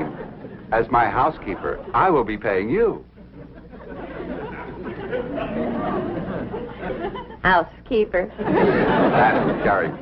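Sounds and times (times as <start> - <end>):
audience laughter: 0.0 - 2.3, 3.2 - 7.5, 8.2 - 10.0.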